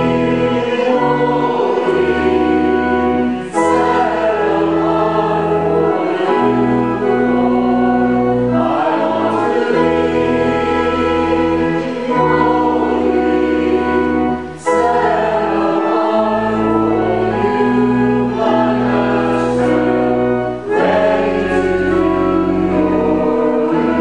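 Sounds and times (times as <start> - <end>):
congregation singing a hymn: 0.0 - 24.0
sustained held chords: 0.0 - 24.0.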